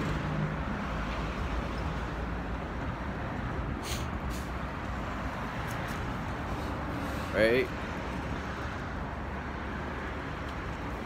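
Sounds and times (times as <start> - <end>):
passing vehicles rumble: 0.0 - 11.0
brief hisses: 3.8 - 4.5.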